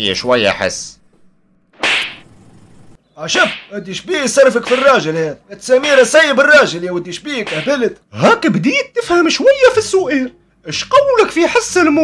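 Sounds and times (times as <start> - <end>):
sharp whip-like crack: 1.8 - 2.2, 3.4 - 3.7, 4.6 - 5.0, 7.5 - 7.8.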